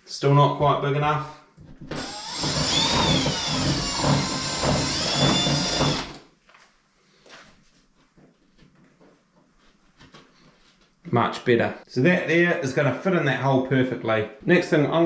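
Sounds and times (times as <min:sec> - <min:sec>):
cordless drill whining: 0:01.9 - 0:06.3.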